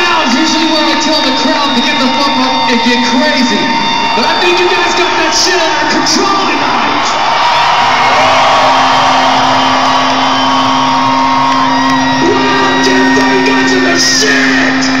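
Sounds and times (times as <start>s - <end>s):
bagpipes over a public address: 0.0s - 7.0s, 10.6s - 15.0s
crowd cheering: 0.0s - 15.0s.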